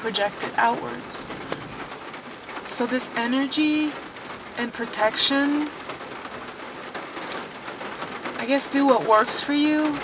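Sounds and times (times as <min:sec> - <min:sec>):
rain hissing on car: 0:00.0 - 0:10.0
raindrop ticks: 0:00.0 - 0:10.0.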